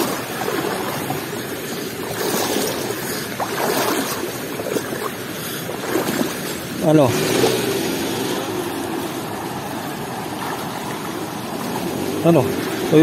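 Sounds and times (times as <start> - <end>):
river running over stones: 0.0 - 13.0.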